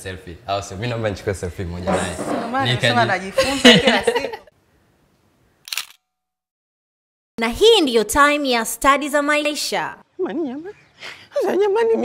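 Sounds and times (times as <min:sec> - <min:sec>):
camera shutter click: 0:05.6 - 0:06.1.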